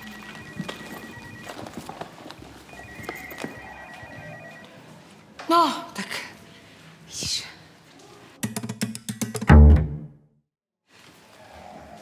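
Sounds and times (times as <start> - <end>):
telephone ringing electronic trill: 0.0 - 1.7, 2.7 - 4.6
items rustling in a handbag: 0.0 - 3.6.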